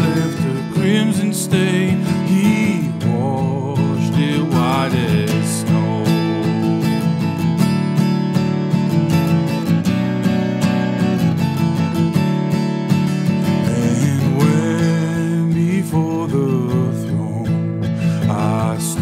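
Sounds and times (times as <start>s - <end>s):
man singing: 0.0s - 7.2s, 13.4s - 19.0s
acoustic guitar strumming: 0.0s - 19.0s.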